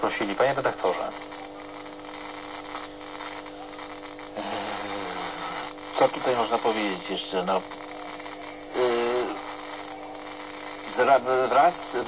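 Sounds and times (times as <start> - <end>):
electrical hum: 0.0 - 12.0
faint murmuring voice: 7.8 - 11.4.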